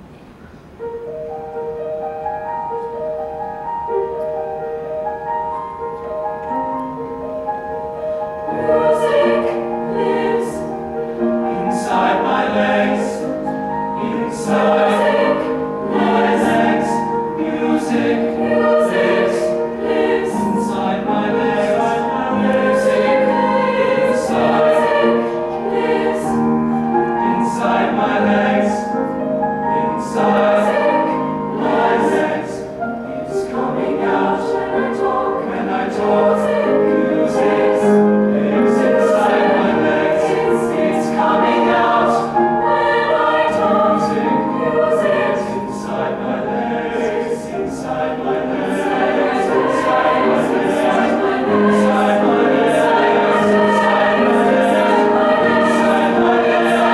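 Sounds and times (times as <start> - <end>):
piano accompaniment: 0.0 - 56.9
youth choir singing: 8.3 - 56.9.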